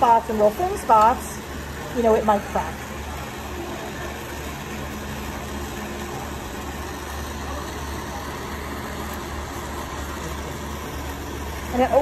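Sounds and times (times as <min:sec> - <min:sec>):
gas torch rushing: 0:00.0 - 0:12.0.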